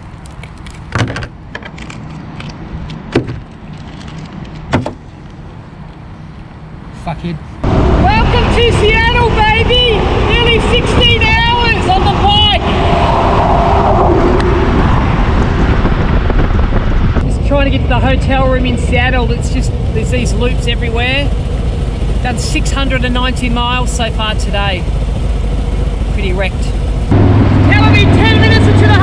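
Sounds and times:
motorcycle riding wind and engine: 0.0s - 29.0s
man shouting: 8.0s - 12.7s, 27.7s - 29.0s.

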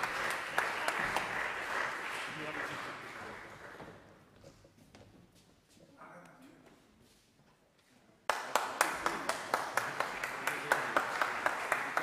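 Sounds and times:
audience applause: 0.0s - 4.0s, 8.3s - 12.0s
sharp hand claps: 0.0s - 4.0s, 8.3s - 12.0s.

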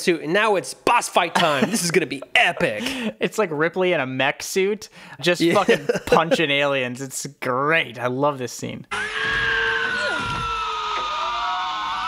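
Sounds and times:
creature shriek falling in pitch: 8.9s - 12.0s.

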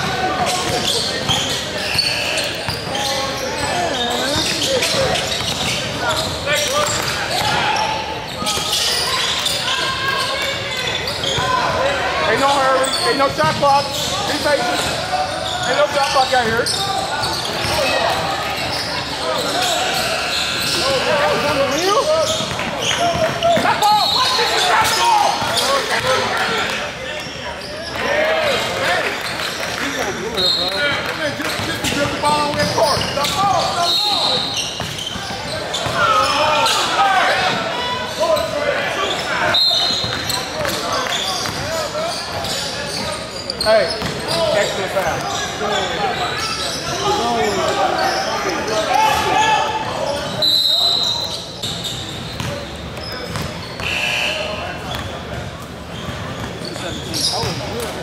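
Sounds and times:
voices echoing in a gym: 0.0s - 58.0s
short high squeaks: 0.8s - 7.0s.

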